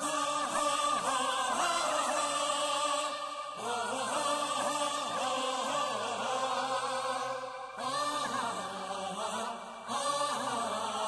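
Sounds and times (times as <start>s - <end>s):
chant-like sung vocal melody: 0.0s - 11.0s.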